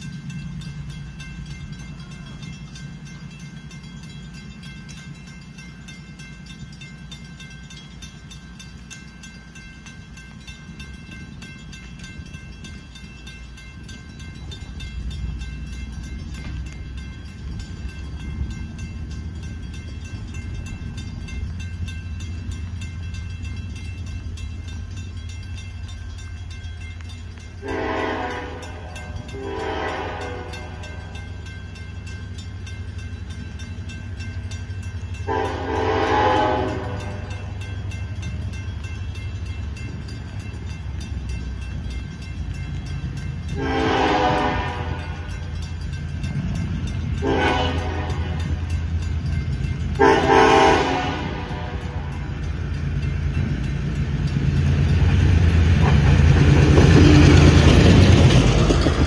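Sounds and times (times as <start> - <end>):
locomotive rumble: 0.0 - 59.0
locomotive horn blasts: 27.6 - 31.1, 35.3 - 37.4, 43.6 - 45.3, 47.2 - 48.6, 50.0 - 52.1.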